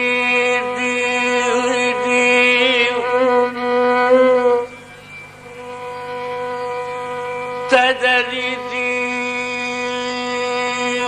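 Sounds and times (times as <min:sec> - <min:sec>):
ornamented melody: 0:00.0 - 0:11.0
steady drone: 0:00.0 - 0:11.0.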